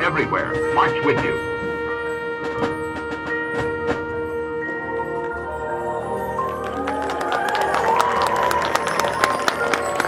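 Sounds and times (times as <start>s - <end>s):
marching band held chord: 0.0s - 10.0s.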